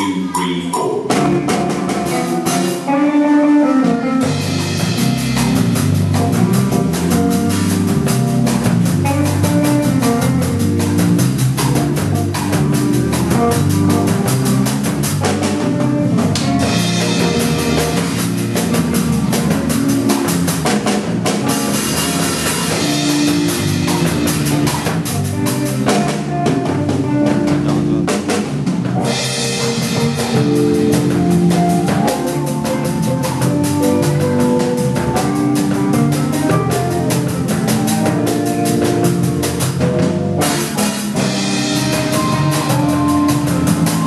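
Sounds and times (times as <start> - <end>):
backing track with bass: 0.0 - 44.0
drum kit groove: 0.0 - 44.0.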